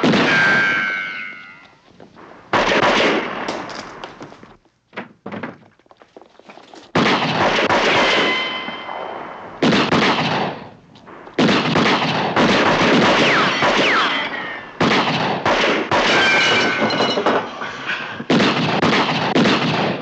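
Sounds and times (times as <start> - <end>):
echoing pistol shots: 0.0 - 1.4, 2.2 - 4.2, 7.0 - 16.9, 18.3 - 20.0
faint cracks and clatter: 3.4 - 7.0.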